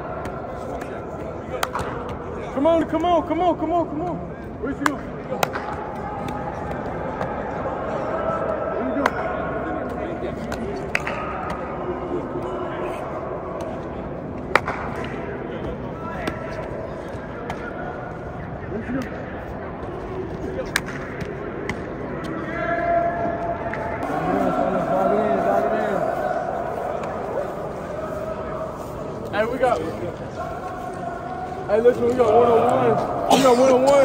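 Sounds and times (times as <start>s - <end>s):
indistinct voices of players talking: 0.0s - 34.0s.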